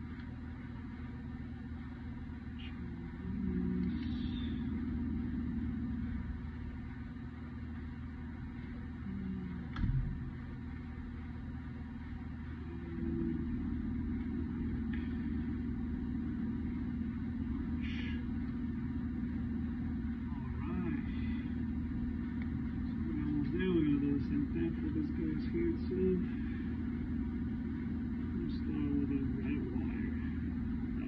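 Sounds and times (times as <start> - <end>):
machinery humming: 0.0 - 31.0.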